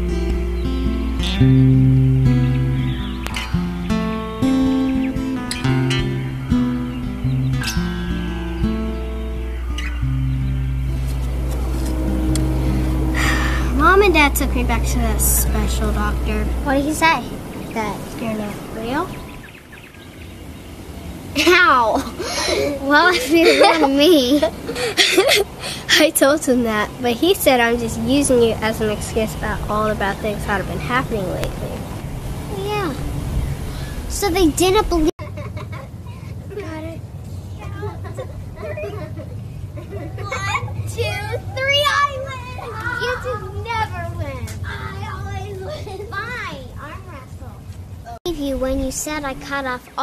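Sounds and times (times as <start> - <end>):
low steady rumble: 0.0 - 19.7
steady low hum: 0.0 - 19.7
girls laughing: 21.4 - 26.1, 35.2 - 36.6, 37.6 - 41.7.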